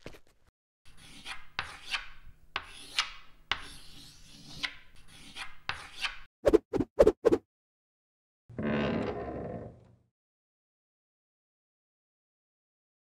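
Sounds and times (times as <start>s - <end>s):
drawing tool scratching on paper: 0.9s - 6.2s.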